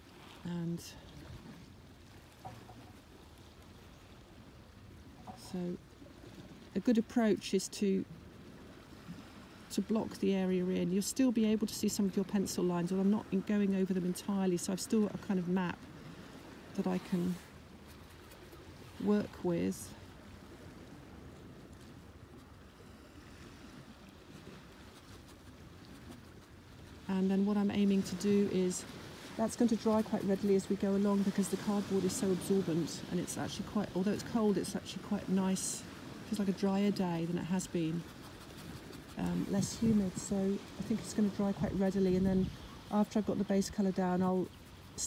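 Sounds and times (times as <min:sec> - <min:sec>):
sea wash: 0:00.0 - 0:45.0
wind and surf rumble: 0:00.0 - 0:45.0.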